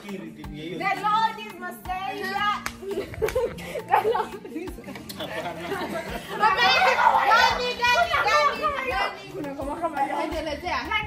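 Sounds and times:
excited high-pitched voices calling: 6.3s - 9.2s.

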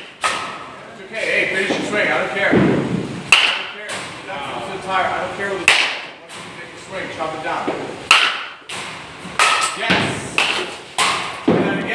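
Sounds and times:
bat striking ball: 0.0s - 0.7s, 2.5s - 4.1s, 5.6s - 6.1s, 7.7s - 11.6s.

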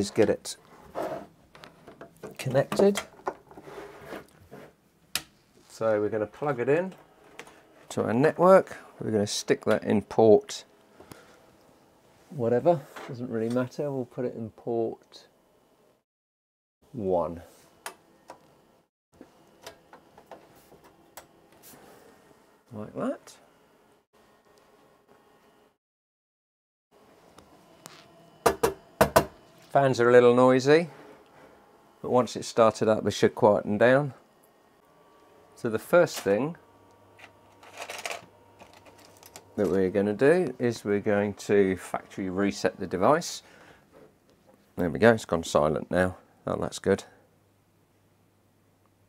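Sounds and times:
cooling fans whirring: 27.0s - 43.7s.

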